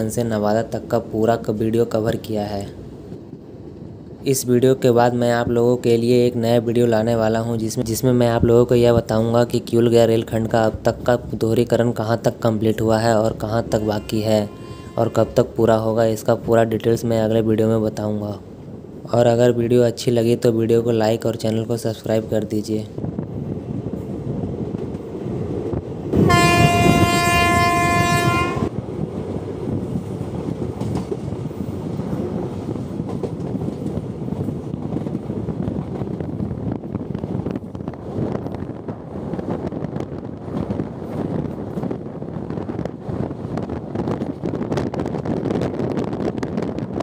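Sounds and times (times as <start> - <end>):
train wheels rumbling on rail: 0.0 - 47.0
train horn: 13.8 - 15.6, 26.2 - 28.8.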